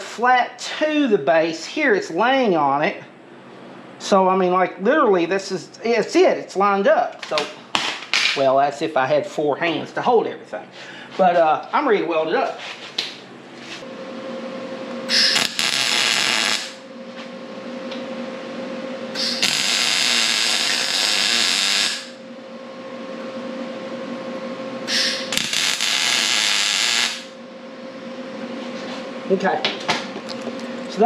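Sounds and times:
welder crackling buzz: 14.8 - 22.4, 24.8 - 27.4.

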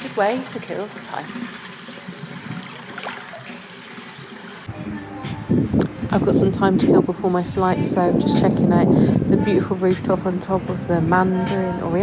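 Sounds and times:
pool water splashing: 0.0 - 4.7.

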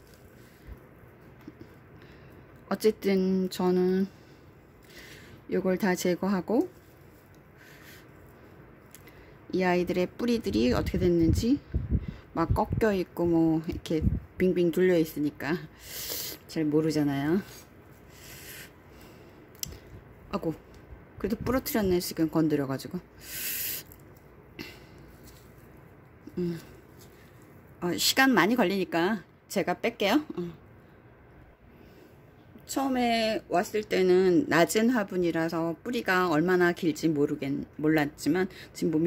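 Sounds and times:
short hiss: 23.2 - 24.0.

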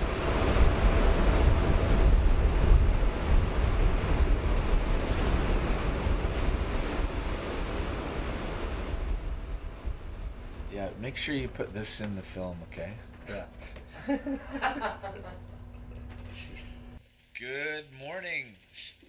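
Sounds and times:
rough sea rushing: 0.0 - 11.0
wind buffeting microphone: 0.0 - 11.6.

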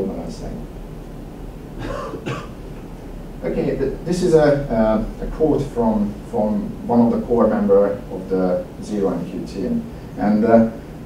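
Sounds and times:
man clearing his throat: 1.8 - 2.6.

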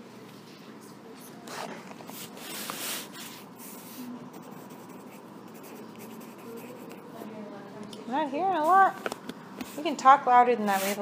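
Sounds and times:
faint scratching and rustling: 10.6 - 11.0.

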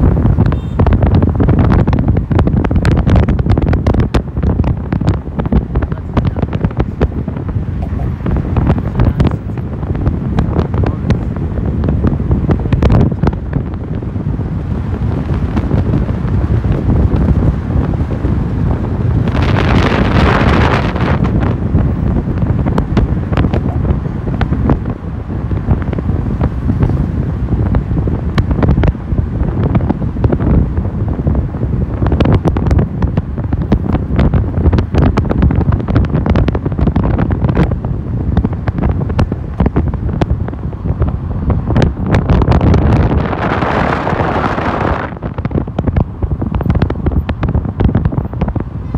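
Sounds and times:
road noise rumble: 0.0 - 48.9
wind buffeting microphone: 0.0 - 48.9.

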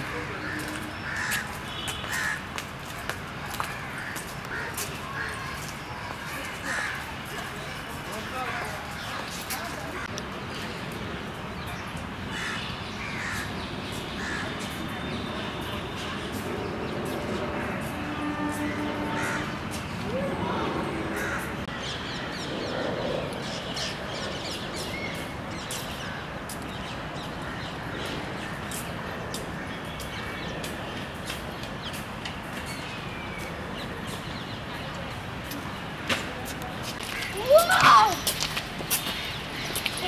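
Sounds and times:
birds calling: 0.0 - 2.5, 11.7 - 35.1
outdoor background noise: 0.0 - 40.0
steady background noise: 0.0 - 40.0
crow cawing: 0.4 - 1.5, 2.1 - 2.4, 19.1 - 19.6, 21.1 - 21.5.

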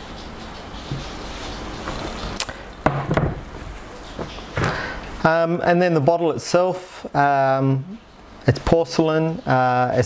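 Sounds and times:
sharp knock: 2.8 - 3.4.

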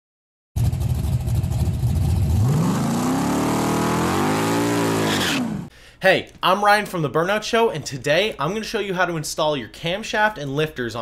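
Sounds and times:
car engine idling and revving: 0.6 - 5.7.

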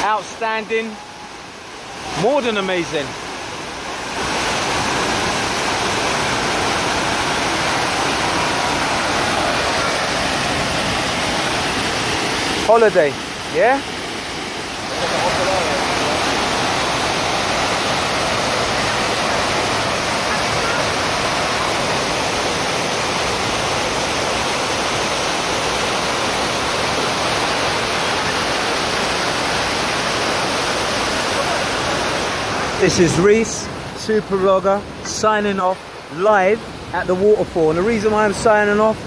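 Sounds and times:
waterfall rushing: 0.0 - 39.0.

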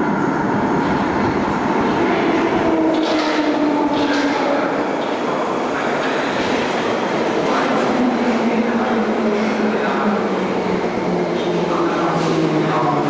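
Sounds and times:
train wheel noise: 0.0 - 13.0.

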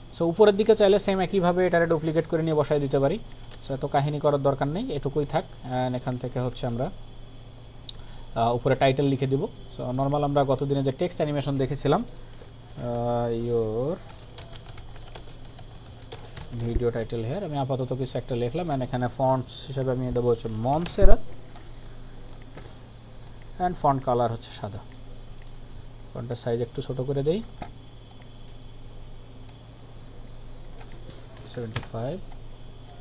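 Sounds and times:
steady low hum: 0.0 - 33.0
keyboard typing: 3.2 - 3.6, 12.0 - 16.8, 19.8 - 24.2, 30.6 - 33.0
computer keyboard keystrokes: 3.3 - 3.6, 14.0 - 16.6, 30.7 - 32.0.

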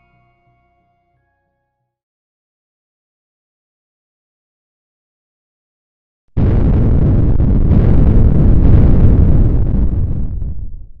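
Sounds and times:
explosion blast with deep rumble: 6.4 - 11.0.

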